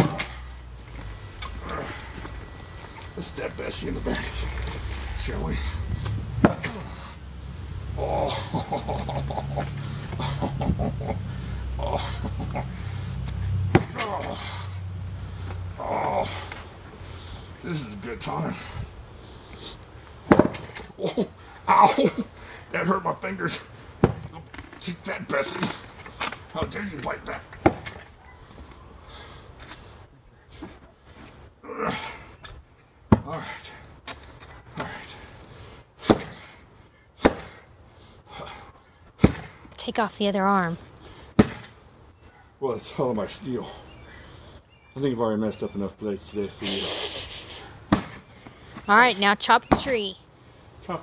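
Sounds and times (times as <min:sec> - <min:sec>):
scraping rustle: 0:04.1 - 0:07.0.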